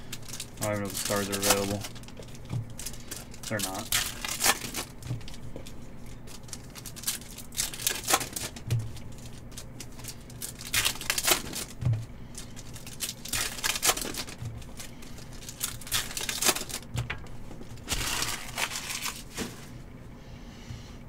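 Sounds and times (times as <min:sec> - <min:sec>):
foil wrappers tearing and crinkling: 0:00.0 - 0:19.7.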